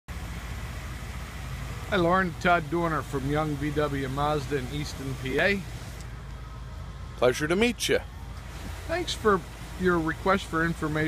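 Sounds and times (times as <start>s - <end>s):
vehicle engine idling: 0.1s - 11.0s
man speaking: 1.9s - 5.8s, 7.2s - 8.1s, 8.8s - 11.0s.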